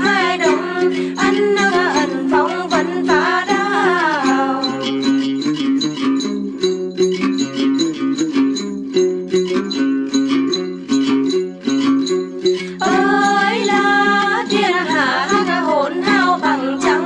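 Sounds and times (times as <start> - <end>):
person singing: 0.0 - 5.3, 12.6 - 17.0
plucked lutes playing: 0.0 - 17.0.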